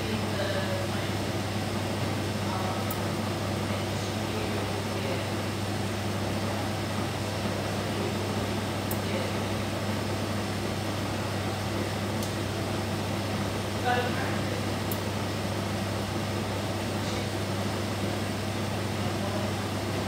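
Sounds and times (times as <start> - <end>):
machine humming: 0.0 - 20.0.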